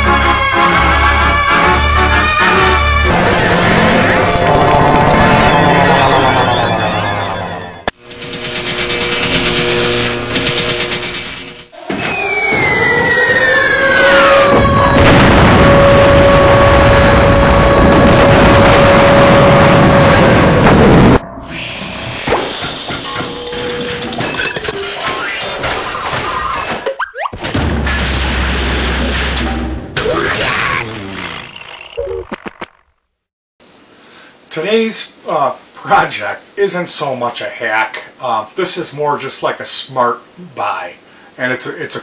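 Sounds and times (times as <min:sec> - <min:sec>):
falling bomb whistle: 0:11.8 - 0:20.7
loud explosion rumble: 0:12.1 - 0:21.3.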